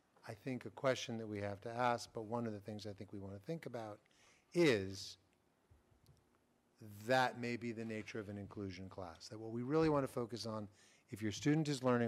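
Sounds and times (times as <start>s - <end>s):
person speaking: 0.2s - 5.3s, 6.8s - 12.0s.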